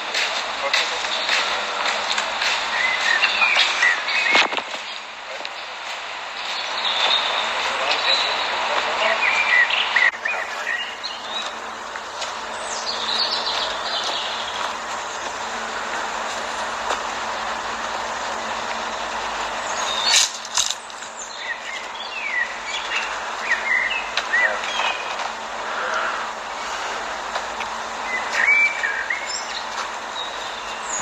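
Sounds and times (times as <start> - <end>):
outdoor background hiss: 0.0 - 31.0
small birds chirping: 0.6 - 16.6, 17.2 - 31.0.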